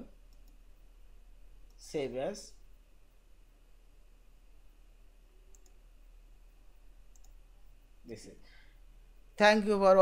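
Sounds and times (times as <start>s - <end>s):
computer mouse clicks: 0.3s - 0.6s, 5.5s - 5.8s, 7.0s - 7.4s.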